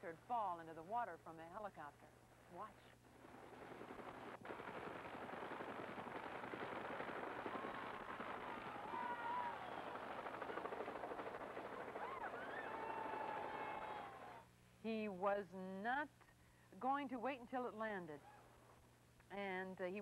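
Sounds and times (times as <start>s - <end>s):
helicopter rotor beating: 10.1s - 12.0s.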